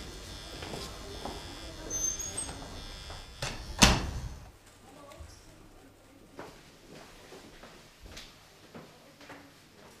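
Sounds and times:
heavy door banging shut: 3.4s - 4.4s.

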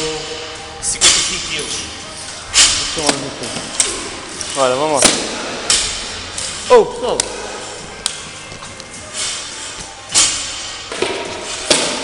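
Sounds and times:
gym equipment knocks and thuds: 10.9s - 12.0s.

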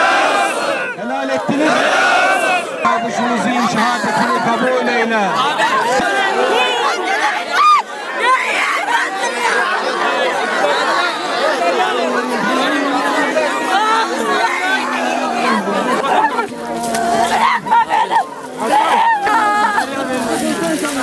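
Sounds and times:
crowd weeping and wailing: 0.0s - 21.0s
loud high cry: 6.4s - 9.6s.

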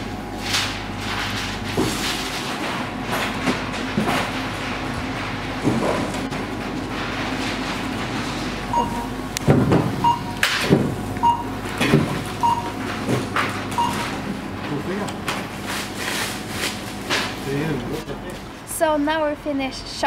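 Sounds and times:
steady mechanical hum: 0.0s - 20.0s
short beeps: 8.7s - 9.1s, 10.0s - 10.4s, 11.2s - 11.5s, 12.4s - 12.7s, 13.8s - 14.0s.

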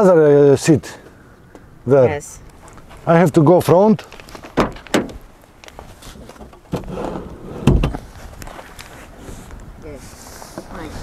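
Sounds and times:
heavy low thump of car door: 7.5s - 8.0s.

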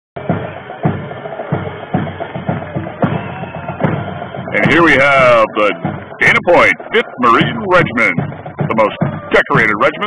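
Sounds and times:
bass drum beats: 0.2s - 10.0s
parade drums playing cadence: 0.2s - 10.0s.

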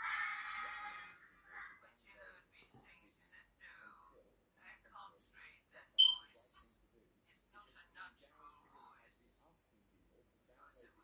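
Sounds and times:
short high beep: 6.0s - 6.2s.

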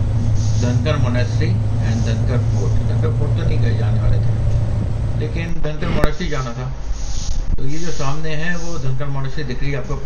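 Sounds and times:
steady low hum: 0.0s - 10.0s
indistinct talking: 0.4s - 10.0s.

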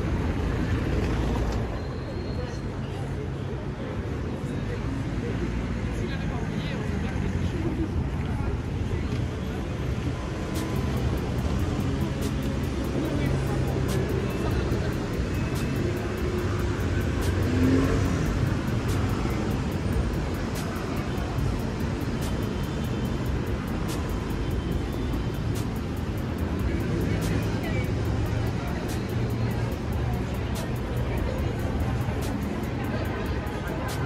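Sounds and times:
crowd chatter: 0.0s - 34.0s
traffic hum: 0.0s - 34.0s.

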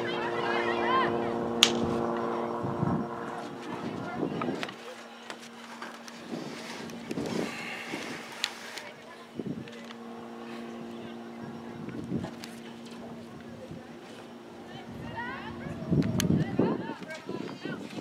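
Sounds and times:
distant shouts and calls: 0.0s - 18.0s
steady hum: 0.0s - 18.0s.

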